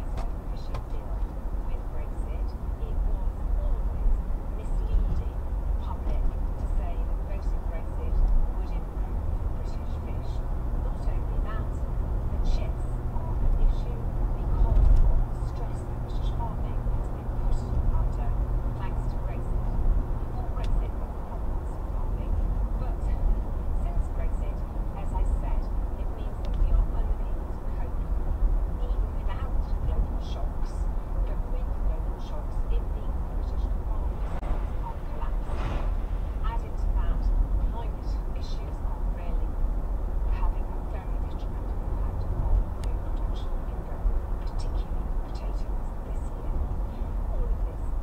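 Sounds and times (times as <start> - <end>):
car road and engine rumble: 0.0 - 48.0
low hum: 0.0 - 48.0.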